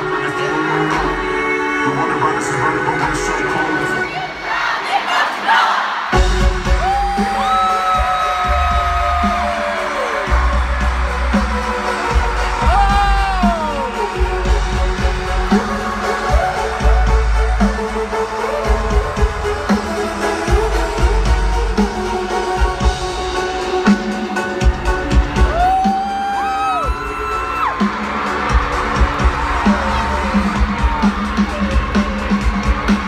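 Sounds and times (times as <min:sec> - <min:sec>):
live band over sound system: 0:00.0 - 0:05.1, 0:05.7 - 0:33.0
heavy bass beat: 0:06.2 - 0:23.8.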